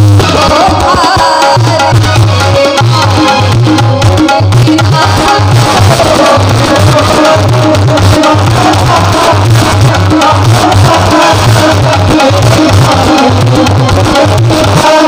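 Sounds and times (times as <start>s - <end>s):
tabla rhythm: 0.0s - 15.0s.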